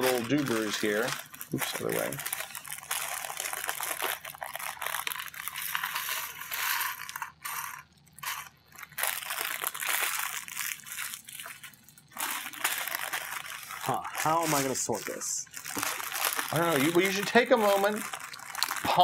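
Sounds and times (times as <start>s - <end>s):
plastic pieces clattering: 0.0s - 19.0s.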